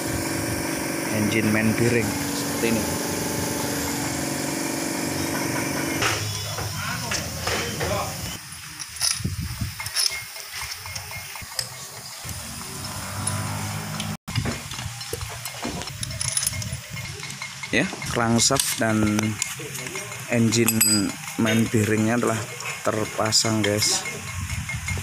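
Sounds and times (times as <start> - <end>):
metallic clicks and knocks: 8.8 - 12.3, 14.0 - 21.7.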